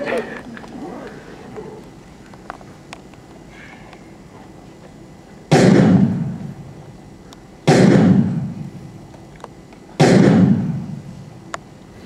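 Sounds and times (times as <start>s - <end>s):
loud booming hits: 5.5s - 6.5s, 7.7s - 8.8s, 10.0s - 11.1s.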